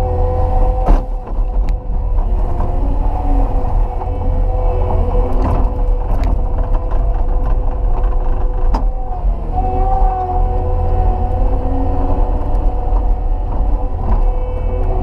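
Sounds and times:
diesel engine droning with whine: 0.0s - 15.0s.

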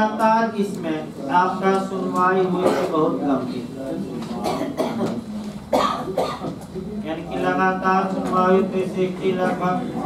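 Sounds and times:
man coughing: 2.6s - 3.1s, 4.4s - 6.6s
man clearing his throat: 2.6s - 3.2s, 4.4s - 6.6s.

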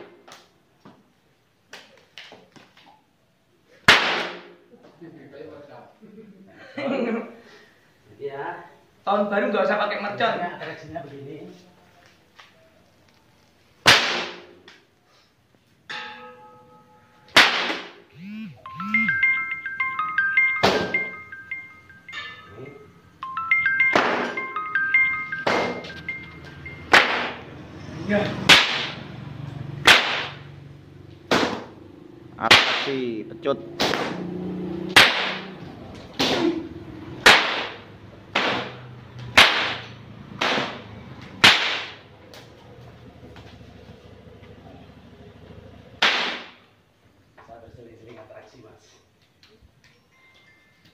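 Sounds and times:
whip cracks: 3.9s - 4.6s, 13.9s - 14.6s, 17.4s - 18.0s, 28.5s - 29.0s, 29.8s - 30.5s, 31.3s - 31.7s, 32.5s - 33.0s, 33.8s - 34.3s, 35.0s - 35.5s, 36.1s - 36.6s, 37.2s - 40.8s, 41.4s - 42.5s, 46.0s - 46.6s
plinking bell-like tune: 18.6s - 27.5s, 49.8s - 50.9s.

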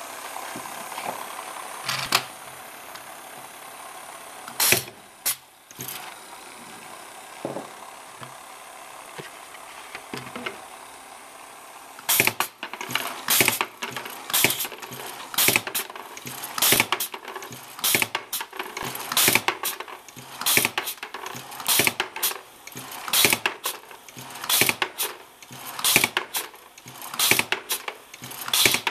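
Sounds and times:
pneumatic machine air bursts and clacks: 0.0s - 6.4s, 12.0s - 28.9s.

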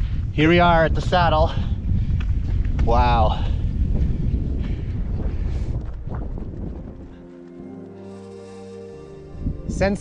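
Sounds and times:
wind buffeting microphone: 0.0s - 7.7s, 9.3s - 10.0s
soft music with held notes: 6.8s - 10.0s.

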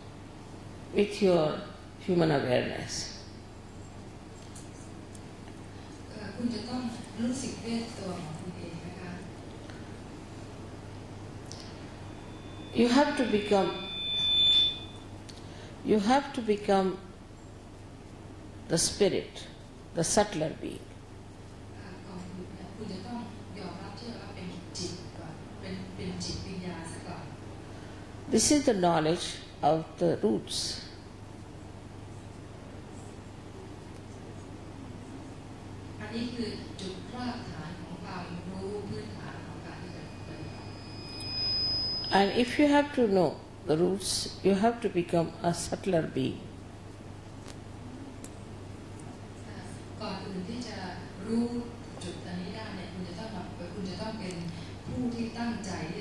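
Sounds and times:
microphone feedback whine: 0.0s - 24.1s, 24.7s - 37.5s, 38.2s - 54.2s
low electrical hum: 0.0s - 56.0s
woman's voice: 0.9s - 3.2s, 6.1s - 9.4s, 12.8s - 13.8s, 15.8s - 17.1s, 18.7s - 20.9s, 21.7s - 27.4s, 28.3s - 30.9s, 36.0s - 40.6s, 42.1s - 46.6s, 49.4s - 56.0s
faint second tone: 8.7s - 16.0s, 38.3s - 42.5s, 47.4s - 48.4s, 49.4s - 50.3s.

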